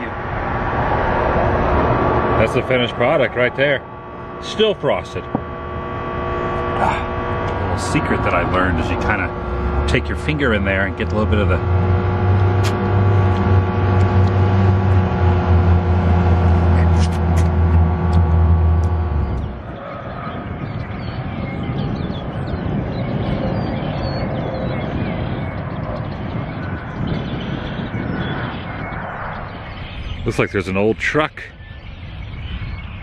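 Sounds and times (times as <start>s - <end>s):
passing traffic: 0.0s - 30.4s
loud mechanical hum: 0.0s - 30.8s
wind: 0.0s - 33.0s.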